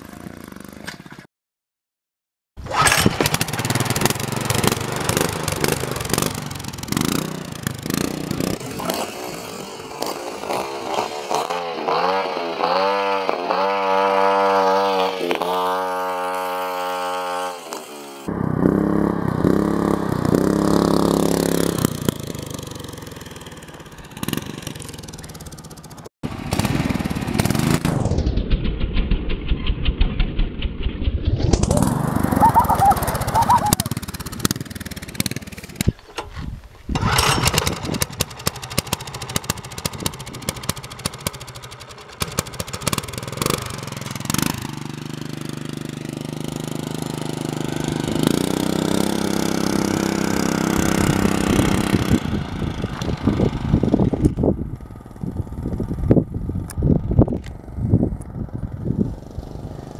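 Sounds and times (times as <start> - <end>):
small engines revving: 2.6 - 28.2, 31.5 - 36.3, 36.9 - 59.9.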